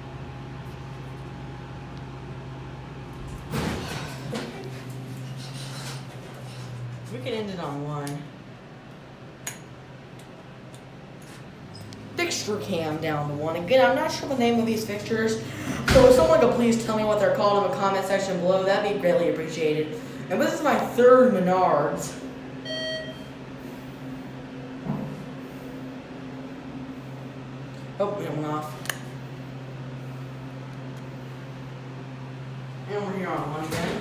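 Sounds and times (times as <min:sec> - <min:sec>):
low steady hum: 0:00.0 - 0:34.0
short electronic beep: 0:22.6 - 0:23.3.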